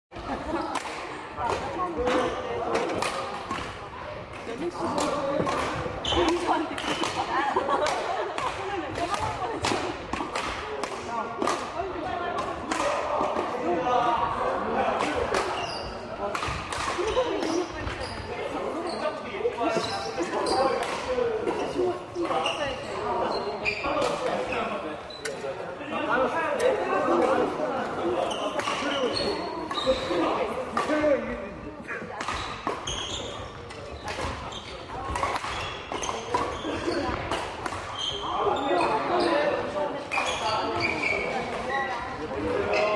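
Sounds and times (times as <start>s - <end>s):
badminton rackets hitting shuttlecocks: 0.7s - 13.6s, 15.0s - 18.0s, 19.7s - 22.5s, 26.6s - 31.0s, 32.2s - 38.0s.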